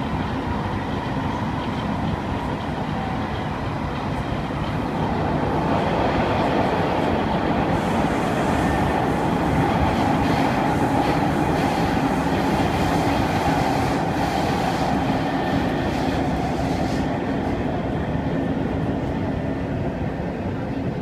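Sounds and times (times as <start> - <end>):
train wheels rumbling on track: 0.0 - 21.0.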